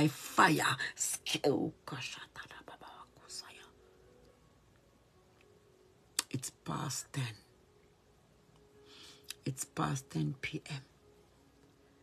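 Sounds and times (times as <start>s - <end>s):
woman whispering: 0.4s - 3.8s
breaths: 8.8s - 9.3s.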